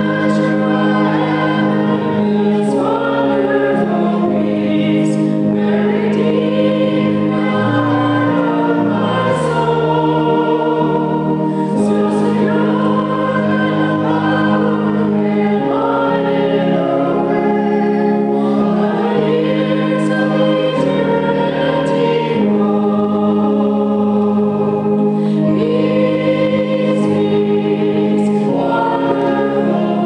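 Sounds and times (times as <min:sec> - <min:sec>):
group singing a hymn: 0:00.0 - 0:30.0
held keyboard chords: 0:00.0 - 0:30.0.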